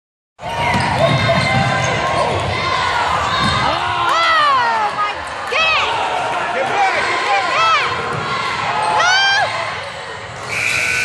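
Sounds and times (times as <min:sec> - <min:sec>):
crowd noise: 0:00.4 - 0:11.0
people shouting: 0:00.5 - 0:11.0.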